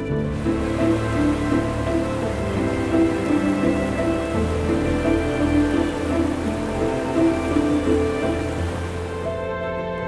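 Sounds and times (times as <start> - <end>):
rushing water hiss: 0.0 - 9.7
calm ambient music: 0.0 - 10.0.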